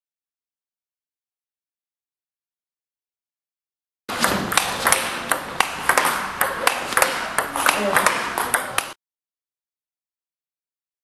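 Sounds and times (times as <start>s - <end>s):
table tennis ball clicks: 4.1s - 9.0s.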